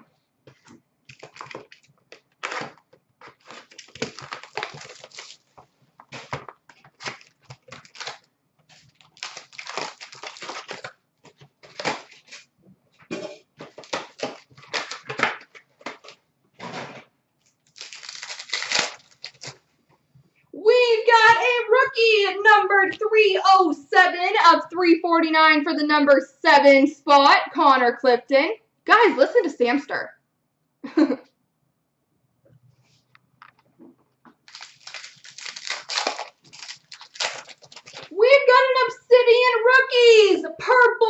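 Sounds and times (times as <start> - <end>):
card packaging tearing and crinkling: 1.1 - 12.5, 13.1 - 16.8, 17.5 - 19.6, 34.4 - 38.2.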